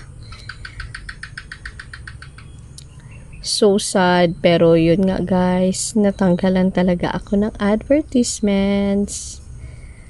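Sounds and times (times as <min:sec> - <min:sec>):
low steady rumble: 0:00.0 - 0:10.0.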